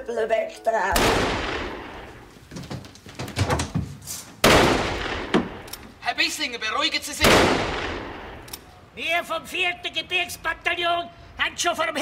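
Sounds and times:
loud gunshot: 1.0s - 2.0s, 4.4s - 5.7s, 7.2s - 8.4s.

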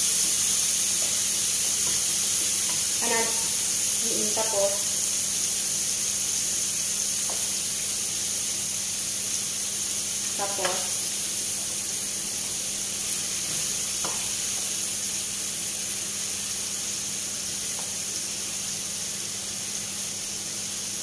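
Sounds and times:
vegetables sizzling in a frying pan: 0.0s - 21.0s
spatula knocking on pan: 10.5s - 10.9s, 13.4s - 14.3s.

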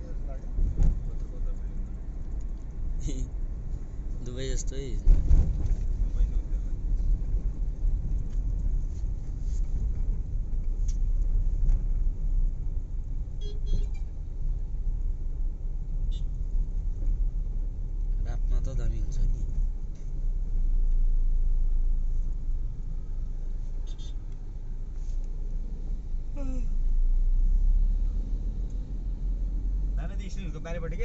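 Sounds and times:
rumble of engines and tyres: 0.0s - 31.0s
brief horn toots: 13.4s - 14.1s.

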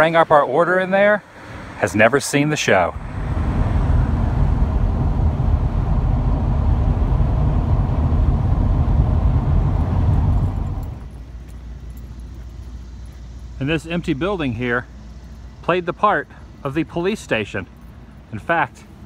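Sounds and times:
car road and engine noise: 0.0s - 19.0s
low hum: 1.2s - 19.0s.

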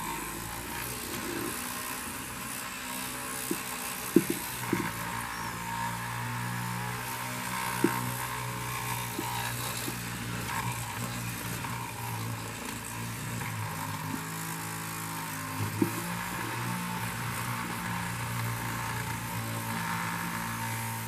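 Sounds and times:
toy helicopter motor and rotor: 0.0s - 21.0s.

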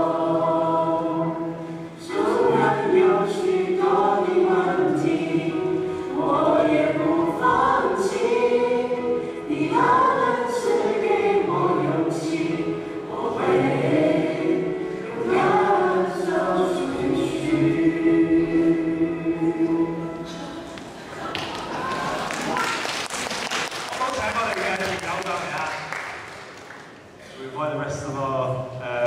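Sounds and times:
choir singing: 0.0s - 21.1s.

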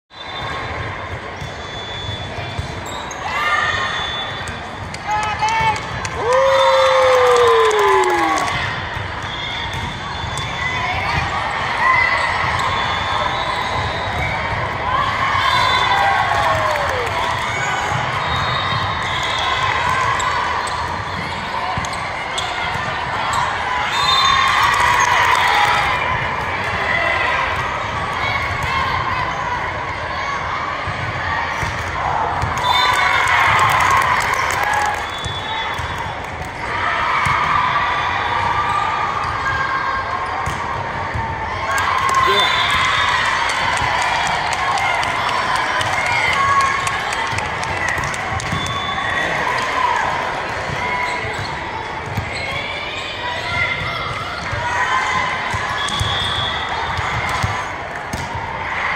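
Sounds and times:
team cheering shout: 5.1s - 8.7s, 14.9s - 17.3s, 41.7s - 47.5s
players' short calls: 41.7s - 43.4s
players calling out: 41.7s - 48.0s
volleyball hits: 47.2s - 52.3s, 55.2s - 58.5s.

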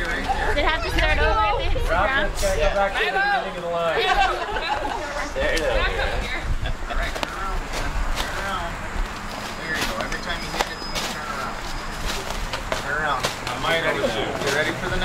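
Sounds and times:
group of people talking: 0.0s - 15.0s.

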